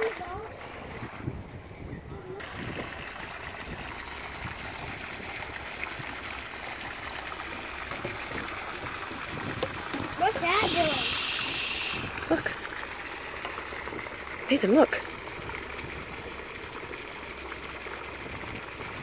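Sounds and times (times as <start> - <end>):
outdoor background noise over water: 0.0 - 19.0
high-pitched voice: 10.2 - 12.5.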